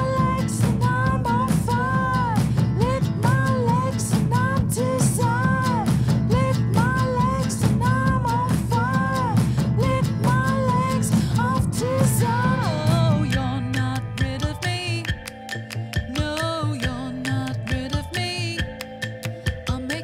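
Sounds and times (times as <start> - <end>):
rock song with drums and guitar: 0.0 - 20.0.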